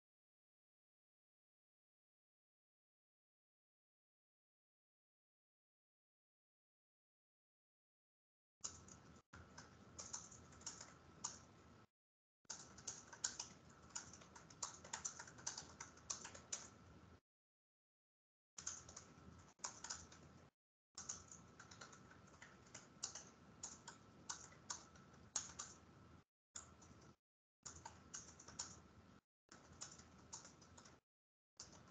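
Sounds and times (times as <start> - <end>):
computer keyboard typing: 8.6 - 11.7, 12.5 - 17.0, 18.6 - 25.9, 26.6 - 31.0, 31.6 - 31.9.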